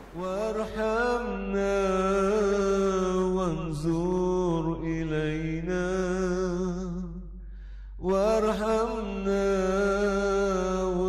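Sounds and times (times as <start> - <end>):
solo voice singing unaccompanied: 0.0 - 7.3, 8.0 - 11.0.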